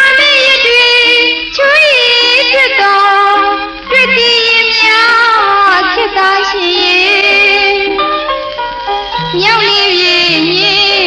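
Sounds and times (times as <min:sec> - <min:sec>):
woman singing: 0:00.0 - 0:08.0, 0:09.2 - 0:11.0
instrumental backing: 0:00.0 - 0:11.0.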